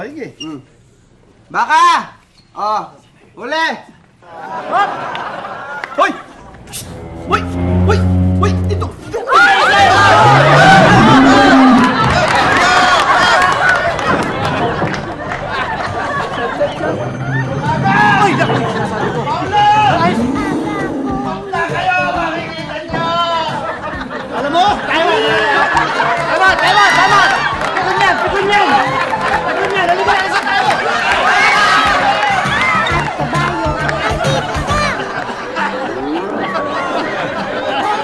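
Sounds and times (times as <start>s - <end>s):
people chattering excitedly: 8.7s - 38.0s.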